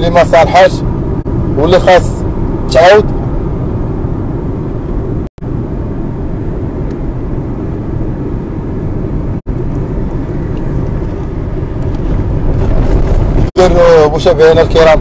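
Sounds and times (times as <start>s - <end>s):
car engine and tyre rumble: 0.0s - 15.0s.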